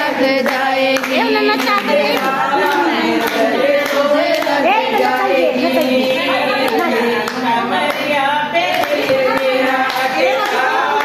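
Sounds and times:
women singing in unison: 0.0 - 11.0
hand claps: 0.2 - 11.0.

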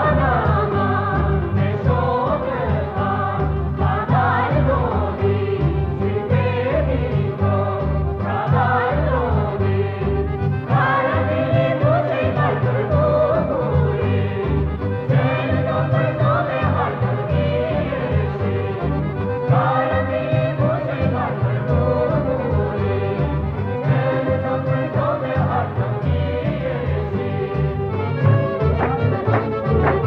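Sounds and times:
folk band with violin and clarinet: 0.0 - 30.0
guitar: 0.0 - 30.0
voices singing: 0.0 - 30.0.

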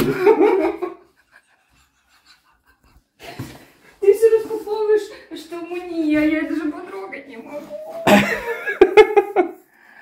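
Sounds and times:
faint breathing: 9.7 - 10.0.

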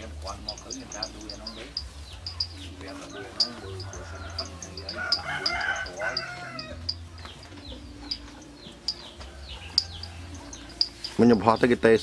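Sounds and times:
small birds chirping: 0.0 - 12.0
rooster crowing: 3.0 - 7.0, 9.2 - 10.9.

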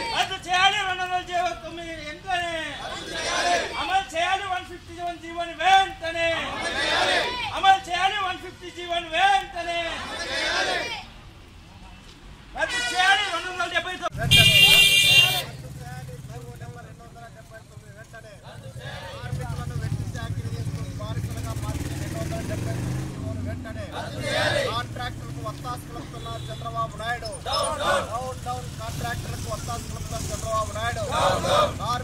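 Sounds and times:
loud vehicle horn: 12.7 - 13.5, 14.1 - 15.6, 26.0 - 26.7
people talking: 12.7 - 32.0
motor vehicle rumble: 14.1 - 32.0.

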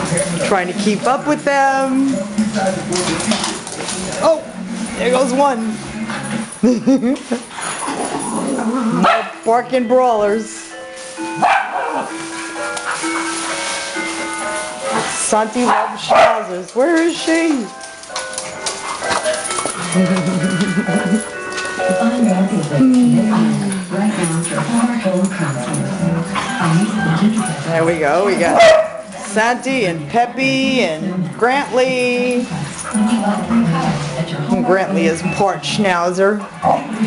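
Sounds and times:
background music: 0.0 - 37.0
dogs scuffling: 0.0 - 37.0
woman laughing: 6.6 - 7.5, 19.9 - 21.4
dogs whining: 17.3 - 29.2.

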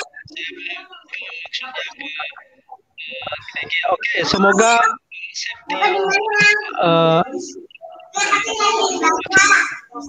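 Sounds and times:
man's voice over video call: 0.0 - 8.4.

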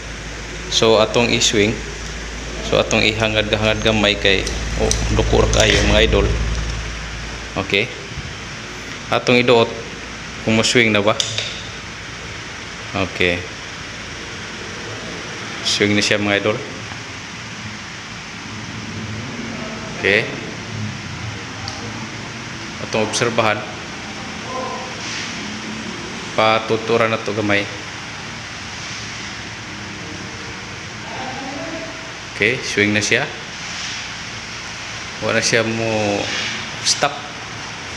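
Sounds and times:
faint motor hum: 0.0 - 35.7
fan blades whirring: 0.0 - 37.9.

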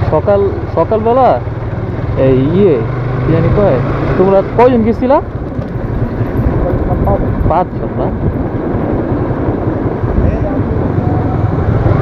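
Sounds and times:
motorcycle engine running: 0.0 - 12.0
wind rumble on microphone: 1.9 - 12.0.

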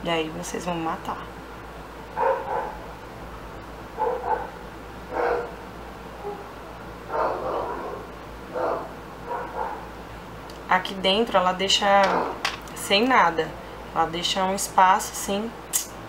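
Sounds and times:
dog barking: 2.2 - 2.8, 4.0 - 5.6, 6.2 - 6.5, 7.1 - 9.9, 12.1 - 12.4.

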